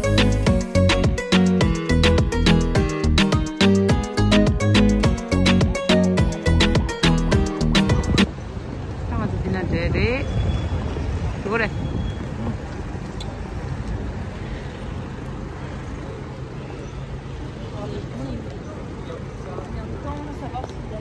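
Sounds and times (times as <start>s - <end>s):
low traffic rumble: 0.0s - 21.0s
voices of passers-by: 0.0s - 21.0s.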